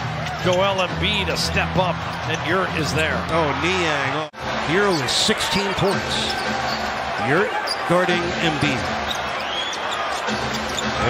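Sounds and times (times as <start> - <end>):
crowd din: 0.0 - 11.0
sneaker squeak: 5.7 - 7.9, 8.9 - 11.0.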